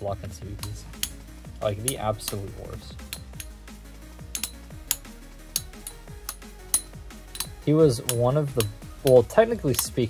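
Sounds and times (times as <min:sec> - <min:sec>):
electronic background music: 0:00.0 - 0:10.0
spinning tops clicking together: 0:00.6 - 0:10.0.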